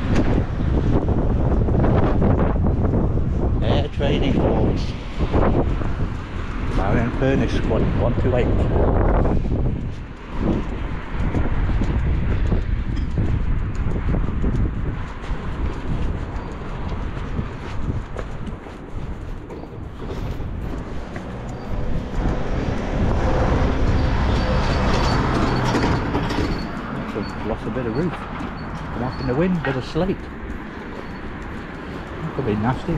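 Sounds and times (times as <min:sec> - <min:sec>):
road traffic passing: 0:00.0 - 0:32.9
wind buffeting microphone: 0:00.0 - 0:32.9.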